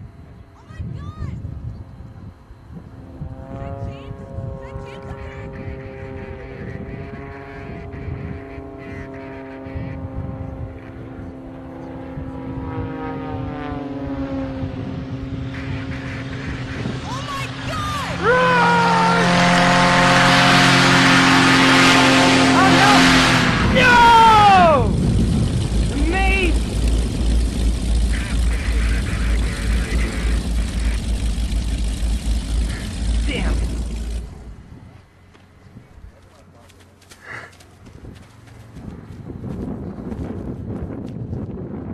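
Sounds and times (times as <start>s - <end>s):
propeller plane engine droning: 0.0s - 41.9s
heavy low rumble: 1.3s - 36.2s
loud rush of noise: 14.7s - 35.0s
people shouting: 17.0s - 19.8s, 22.5s - 25.0s.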